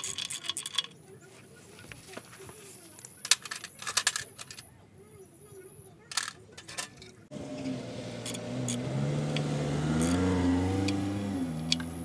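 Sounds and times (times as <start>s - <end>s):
car engine revving: 7.3s - 12.0s
metallic ratchet clicks: 10.0s - 10.2s.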